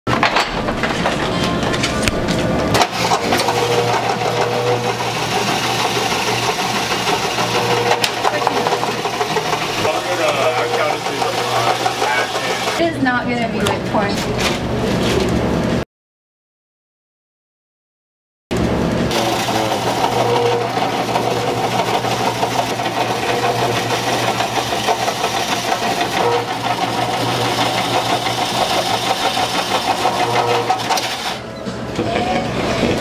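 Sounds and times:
motor hum: 0.1 - 15.8, 18.5 - 33.0
people talking: 8.2 - 9.0, 9.8 - 14.4, 32.0 - 33.0.

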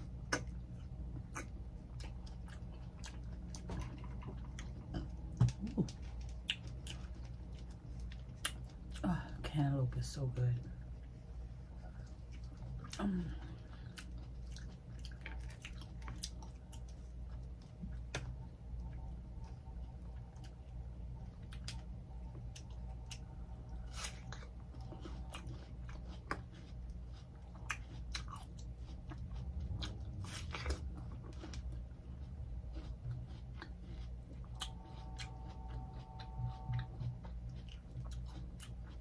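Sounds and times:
chewing fruit: 0.0 - 39.0
steady low hum: 0.0 - 39.0.

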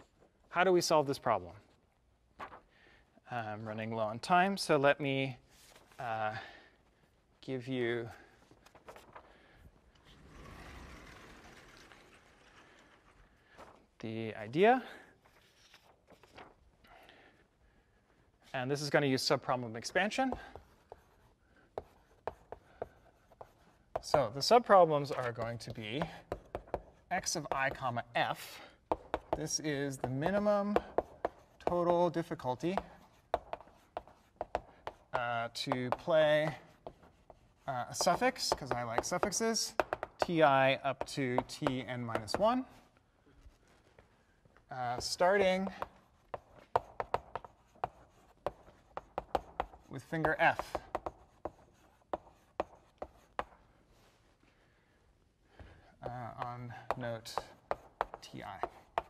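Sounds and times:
chalk scratching: 18.8 - 42.9, 44.8 - 54.2, 56.0 - 59.0
chalk tapping on blackboard: 20.0 - 28.0, 28.8 - 42.8, 44.8 - 53.7, 56.0 - 59.0.

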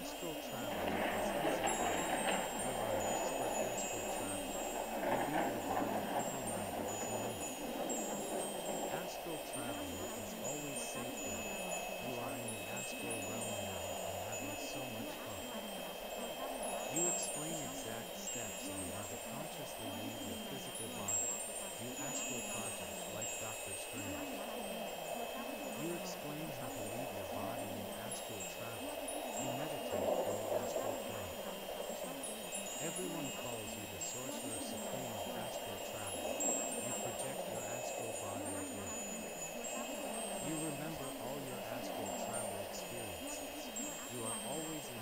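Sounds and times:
faint voice murmuring: 0.0 - 45.0
steady drone: 0.0 - 45.0
tinkling wind chimes: 0.0 - 45.0.

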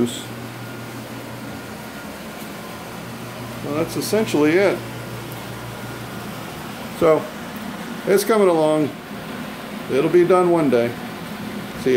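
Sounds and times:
steady background hum: 0.0 - 11.9.

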